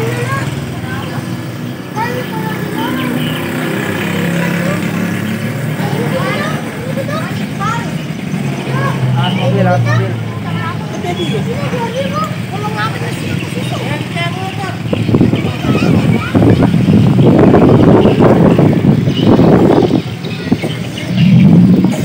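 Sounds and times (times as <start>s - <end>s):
motorcycle engine running: 0.0s - 9.1s, 10.6s - 22.0s.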